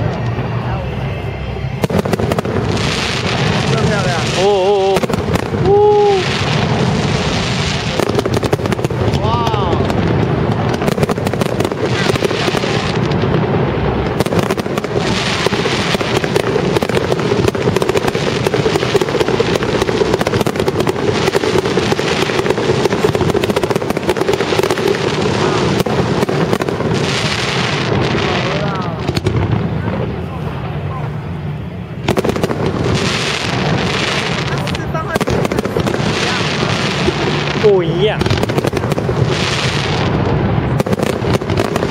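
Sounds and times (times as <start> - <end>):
crowd murmuring: 0.0 - 39.2
fireworks shells bursting: 1.8 - 28.1.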